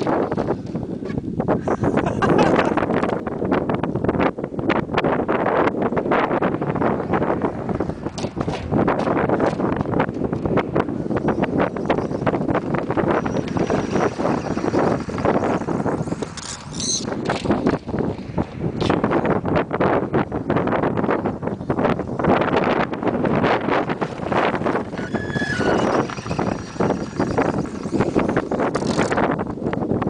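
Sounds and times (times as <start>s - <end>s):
wind buffeting microphone: 0.0s - 30.0s
wavering high whine: 11.0s - 17.6s, 23.9s - 28.8s.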